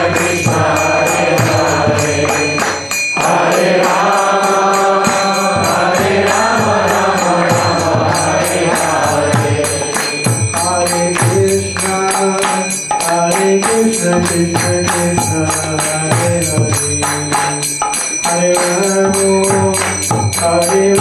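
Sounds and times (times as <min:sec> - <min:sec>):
hand cymbals striking: 0:00.0 - 0:21.0.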